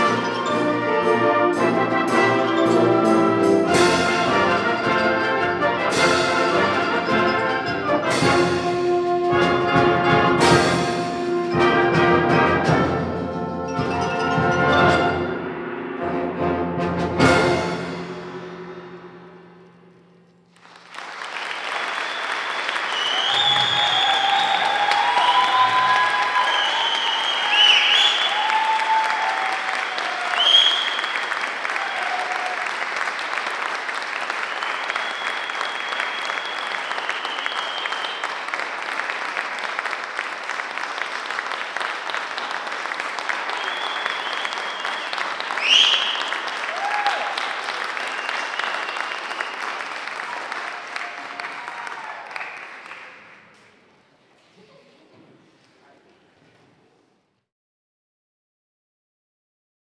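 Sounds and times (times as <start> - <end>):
audience applauding: 20.5 - 53.8
cheers and whoops: 22.8 - 32.8, 43.5 - 52.6.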